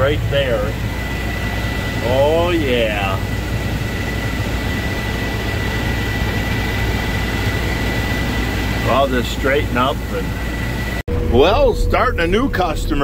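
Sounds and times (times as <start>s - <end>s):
high-pitched whine: 0.0s - 13.0s
tractor engine droning: 0.0s - 13.0s.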